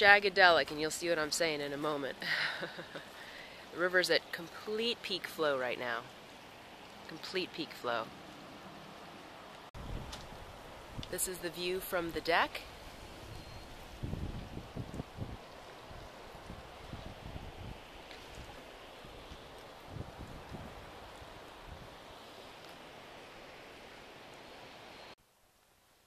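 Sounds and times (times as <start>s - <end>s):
wind buffeting microphone: 9.8s - 11.2s, 12.7s - 21.9s
river rushing: 10.4s - 25.2s.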